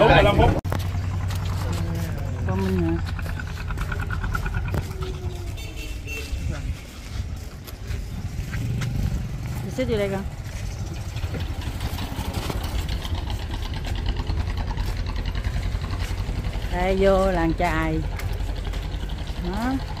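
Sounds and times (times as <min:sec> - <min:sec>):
people talking: 0:00.0 - 0:00.6, 0:01.6 - 0:03.4, 0:09.6 - 0:10.4, 0:16.7 - 0:18.1, 0:19.4 - 0:19.8
small engine running: 0:00.2 - 0:06.0, 0:07.3 - 0:20.0.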